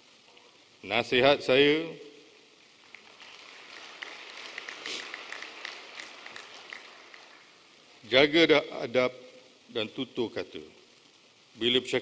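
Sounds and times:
audience applauding: 2.8 - 7.7.

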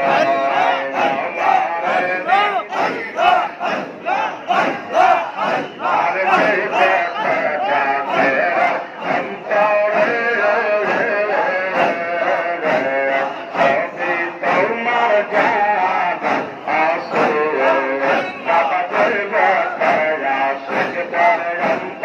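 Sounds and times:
crowd of men chanting: 0.0 - 22.0.

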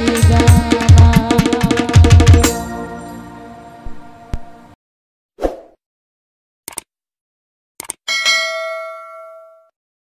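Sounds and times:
notification bell ding: 8.1 - 9.7.

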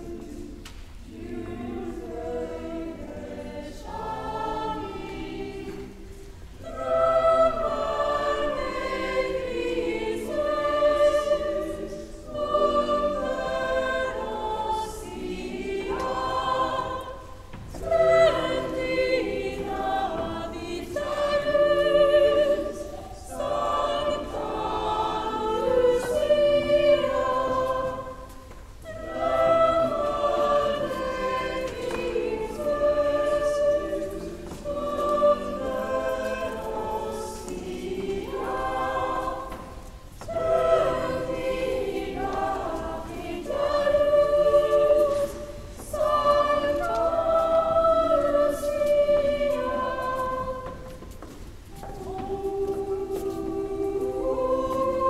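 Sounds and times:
girls' choir singing: 0.0 - 55.0.

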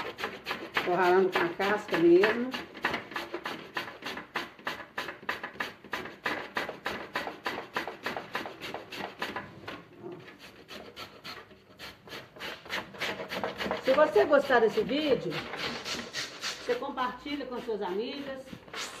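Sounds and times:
papaya rasping on grater: 0.0 - 19.0.

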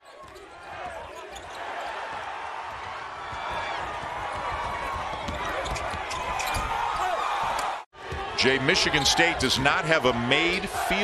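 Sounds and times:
crowd noise: 0.0 - 11.0
basketball bouncing on hardwood: 2.8 - 6.8.

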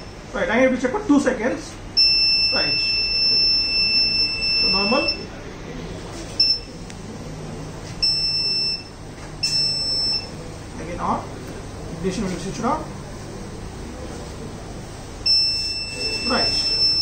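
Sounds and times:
electronic alarm beeps: 2.0 - 5.3, 6.4 - 6.7, 8.0 - 10.4, 15.2 - 17.0.

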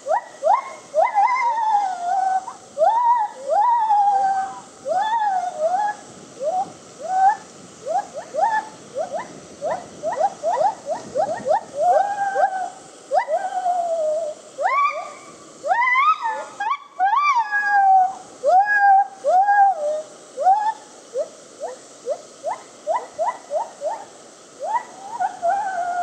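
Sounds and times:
gibbon whooping calls: 0.0 - 26.0.

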